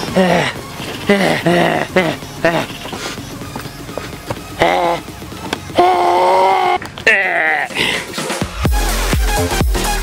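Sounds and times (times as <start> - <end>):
person making wordless vocal sounds: 0.0 - 3.0, 4.5 - 5.1, 5.7 - 8.0.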